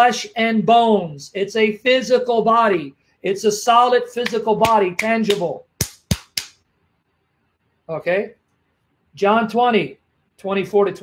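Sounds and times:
hand slaps: 0:04.2 - 0:06.6.

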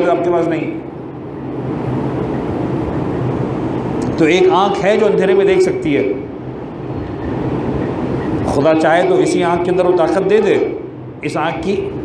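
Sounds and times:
low hum: 0:00.0 - 0:12.0
steady background drone: 0:00.0 - 0:12.0.

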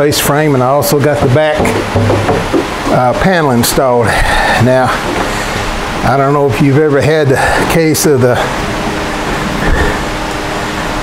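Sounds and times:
faint constant hum: 0:00.0 - 0:11.0
fan rushing noise: 0:00.0 - 0:11.0.

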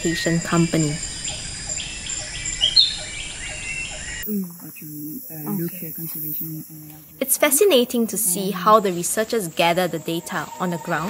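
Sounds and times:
bird calls: 0:00.0 - 0:11.0
insects trilling: 0:00.0 - 0:11.0.

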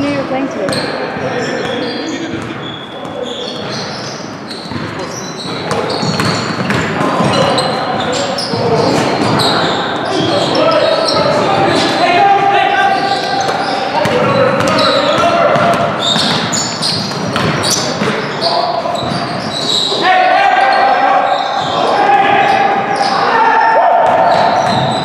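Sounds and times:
players calling out: 0:00.0 - 0:25.0
basketball bouncing on hardwood floor: 0:04.7 - 0:09.5, 0:14.0 - 0:18.2.

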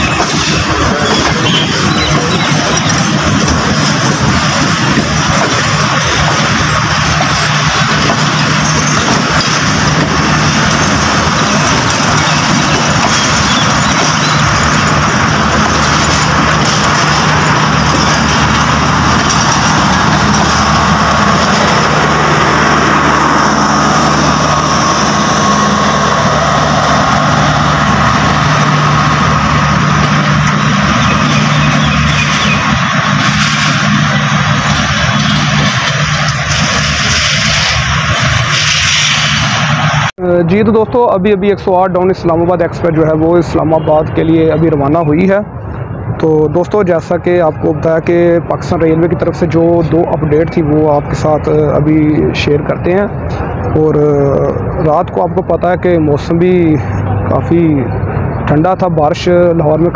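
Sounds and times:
constant low hum: 0:00.0 - 0:59.9
train wheels rumbling on rails: 0:00.0 - 0:59.9.

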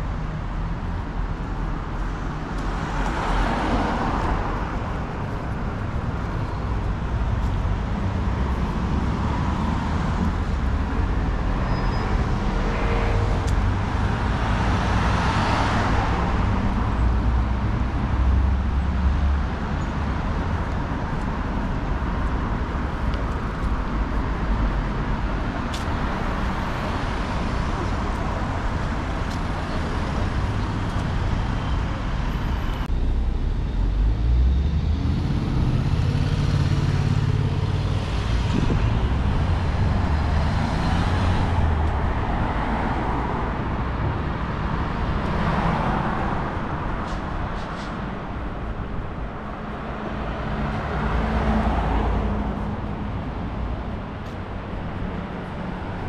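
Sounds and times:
cars driving past: 0:00.0 - 0:56.0
bus driving past: 0:26.1 - 0:56.0.

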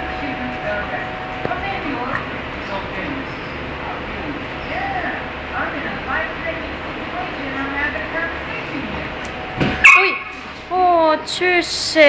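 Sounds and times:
dog yipping: 0:09.8 - 0:10.4.

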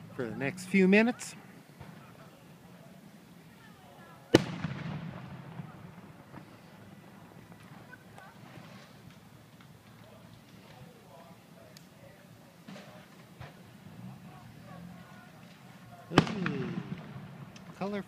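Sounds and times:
firework bang echoing: 0:04.3 - 0:09.1, 0:16.1 - 0:18.0.

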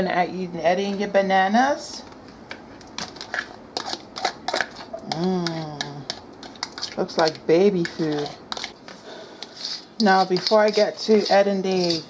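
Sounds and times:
utensil scraping bowls: 0:03.1 - 0:12.0
person speaking: 0:05.0 - 0:06.2, 0:06.9 - 0:08.5, 0:09.6 - 0:12.0.

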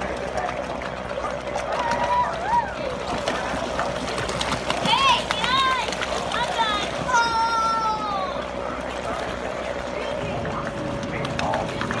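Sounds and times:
paddle wheels splashing water: 0:00.0 - 0:12.0.

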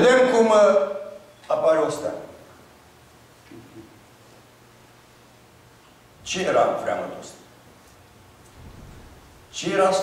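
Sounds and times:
low hum: 0:08.3 - 0:09.6.

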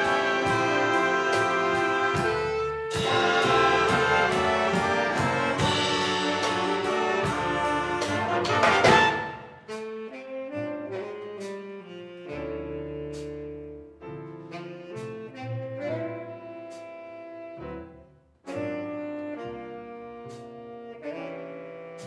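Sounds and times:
jazz big band ballad: 0:00.0 - 0:22.0.

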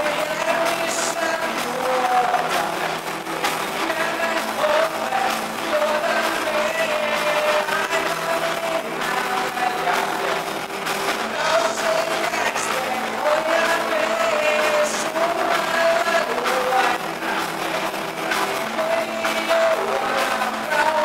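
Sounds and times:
electric guitar melody: 0:00.0 - 0:21.0.

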